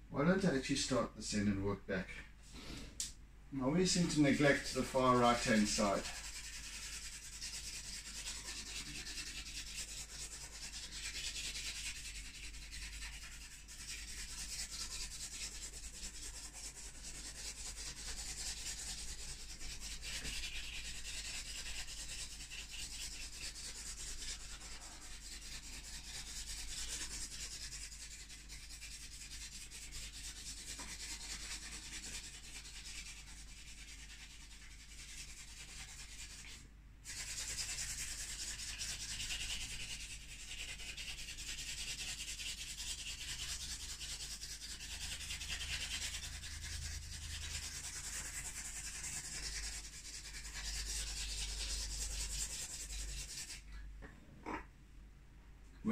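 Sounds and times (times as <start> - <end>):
charcoal stick scratching: 3.9 - 53.7.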